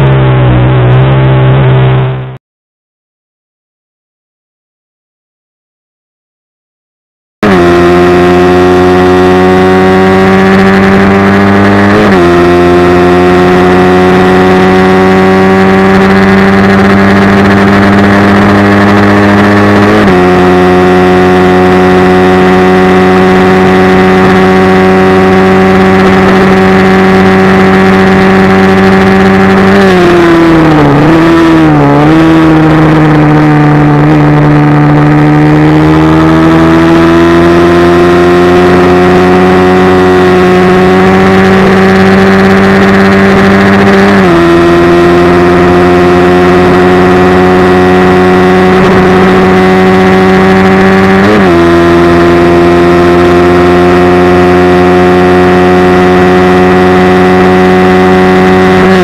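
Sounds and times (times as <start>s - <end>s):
motorcycle engine revving: 0.0s - 2.4s, 7.4s - 59.0s.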